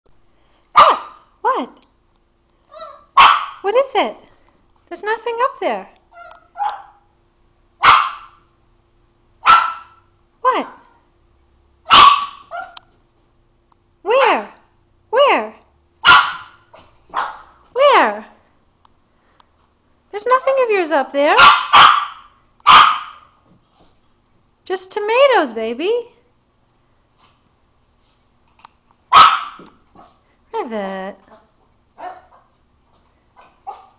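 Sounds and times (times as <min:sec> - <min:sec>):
small dog barking: 0:00.7 - 0:01.3, 0:02.7 - 0:03.6, 0:06.2 - 0:07.1, 0:07.8 - 0:08.4, 0:09.4 - 0:11.0, 0:11.9 - 0:12.9, 0:16.0 - 0:17.6, 0:21.4 - 0:23.4, 0:29.1 - 0:30.2, 0:31.3 - 0:32.5, 0:33.4 - 0:33.9.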